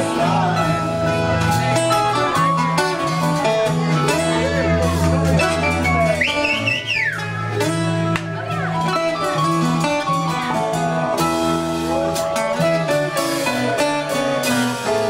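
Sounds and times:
drums: 0:00.0 - 0:15.0
keyboard: 0:00.0 - 0:15.0
mandolin: 0:00.0 - 0:15.0
strummed acoustic guitars: 0:00.0 - 0:15.0.

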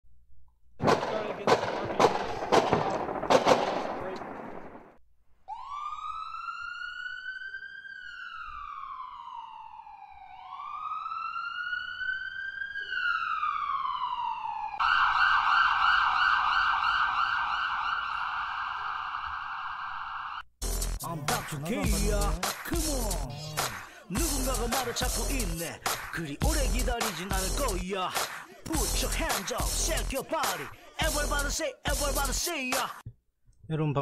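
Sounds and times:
sharp cracks: 0:00.8 - 0:05.0
emergency vehicle siren: 0:05.4 - 0:20.4.

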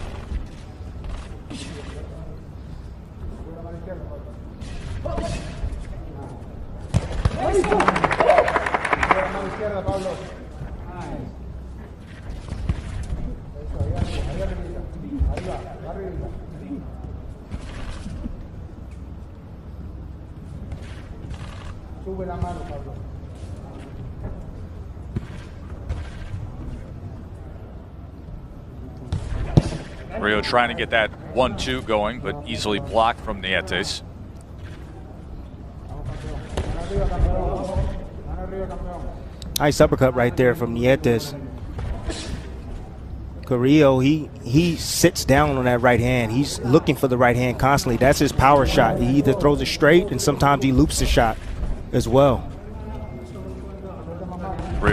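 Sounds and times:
arena background noise: 0:00.0 - 0:54.9.

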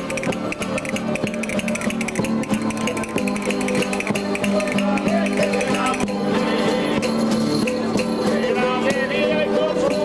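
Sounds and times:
folk string band playing: 0:00.0 - 0:10.0.

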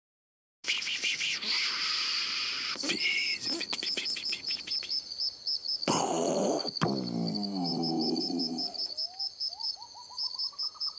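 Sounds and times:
crickets chirping: 0:00.7 - 0:10.9
low wavering voice-like sound: 0:05.9 - 0:09.0.

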